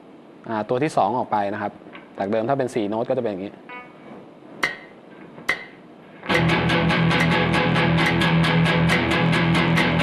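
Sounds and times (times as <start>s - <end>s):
guitar rhythm pattern: 3.7s - 4.0s, 5.5s - 10.0s
sharp count-in clicks: 7.1s - 8.3s, 8.9s - 10.0s.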